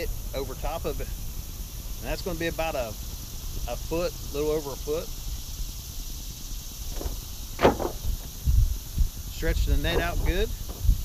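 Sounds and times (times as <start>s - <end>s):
wind rumbling on microphone: 4.9s - 11.0s.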